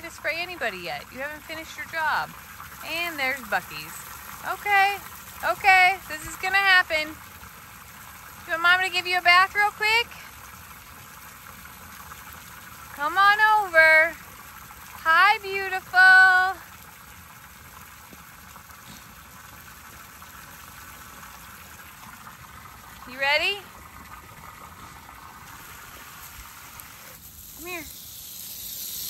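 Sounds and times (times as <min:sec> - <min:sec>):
water running into a trough: 0:00.0 - 0:29.0.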